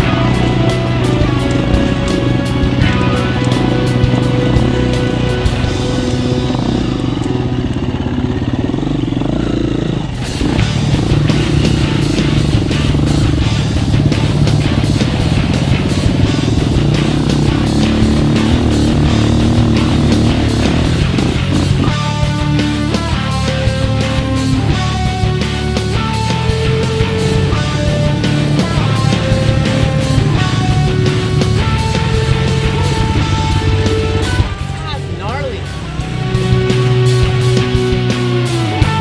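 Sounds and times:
dirt bike engine running: 0.0 - 39.0
rock music: 0.0 - 39.0.

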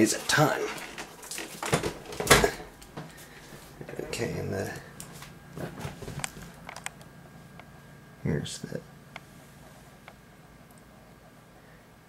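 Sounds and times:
tv set thudding down: 0.7 - 2.8.

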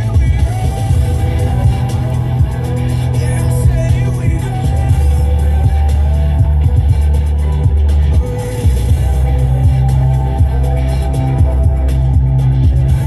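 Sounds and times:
music with heavy bass from car stereo: 0.0 - 13.0.

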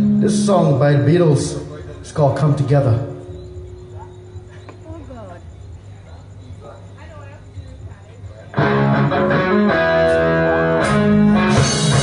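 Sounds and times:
steady low hum: 0.0 - 9.5
faint voices: 1.6 - 8.8.

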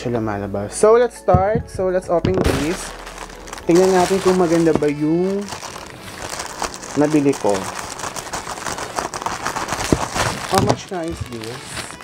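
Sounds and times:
plastic crinkling: 2.3 - 12.0
scissors cutting plastic bag: 2.4 - 12.0.

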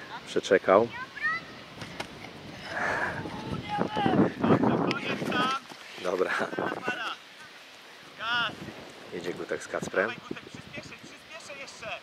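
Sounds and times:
child shouting: 0.9 - 1.6, 3.2 - 4.2
wind buffeting microphone: 1.6 - 7.2, 8.4 - 11.2.

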